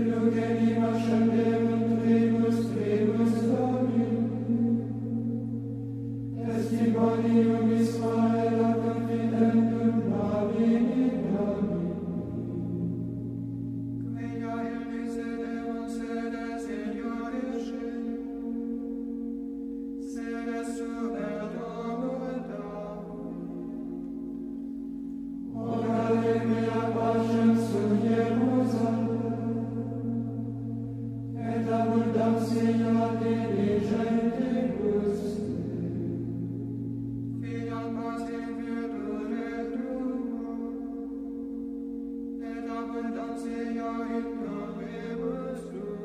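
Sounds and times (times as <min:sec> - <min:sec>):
voice chanting: 0:00.0 - 0:13.2, 0:25.5 - 0:36.7
low drone: 0:00.0 - 0:46.0.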